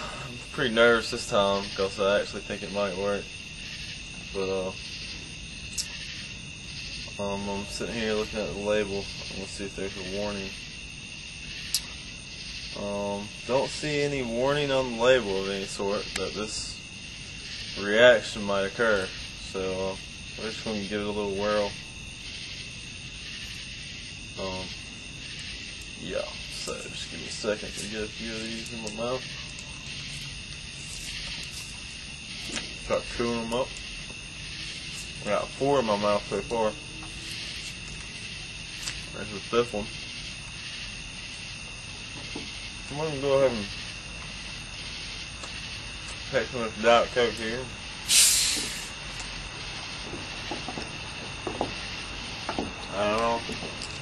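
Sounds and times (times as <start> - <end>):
steady background hiss: 0.0 - 54.0
hiss of escaping carbonation: 48.0 - 49.2.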